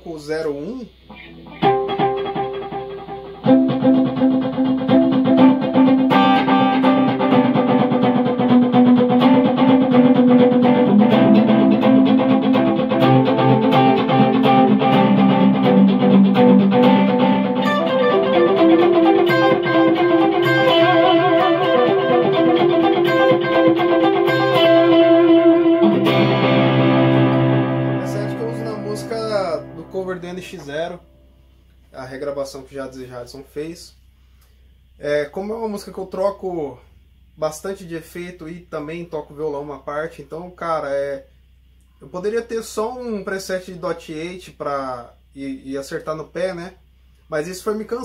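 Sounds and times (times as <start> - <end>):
electric guitar melody: 1.1 - 31.5.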